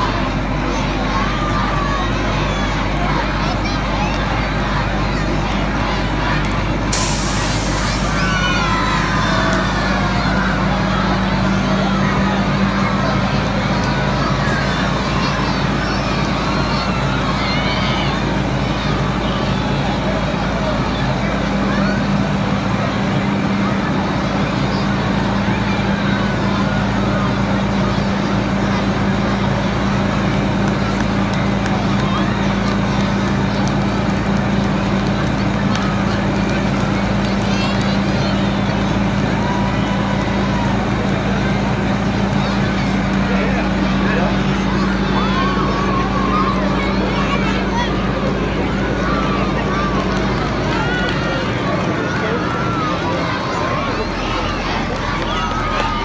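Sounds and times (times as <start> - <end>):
fire engine pump droning: 0.0 - 56.0
water stream hissing: 6.9 - 8.5.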